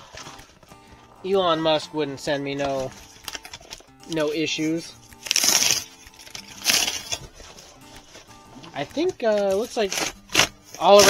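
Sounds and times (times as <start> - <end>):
cardboard ripping: 5.2 - 8.2, 9.0 - 11.0.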